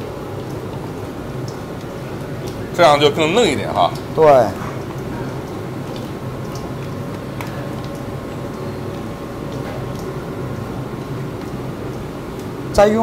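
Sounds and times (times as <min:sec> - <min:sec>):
kitchen machinery humming: 0:00.0 - 0:13.0.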